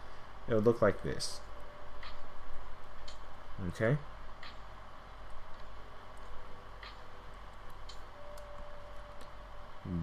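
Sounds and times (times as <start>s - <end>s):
low hum: 0.0s - 10.0s
faint steady tone: 6.3s - 10.0s.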